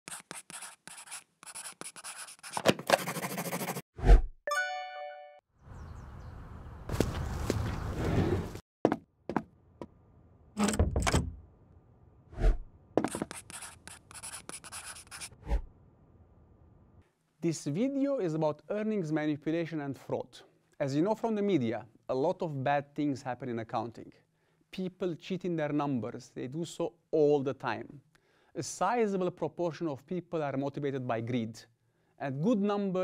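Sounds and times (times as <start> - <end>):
pen scribbling on paper: 0.1 - 3.8, 13.0 - 15.4
marker scratching on whiteboard: 0.1 - 3.9, 13.0 - 15.4.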